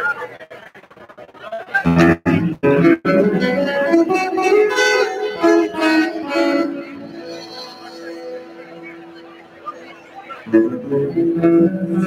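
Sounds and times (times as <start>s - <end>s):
acoustic guitar playing: 1.9s - 12.0s.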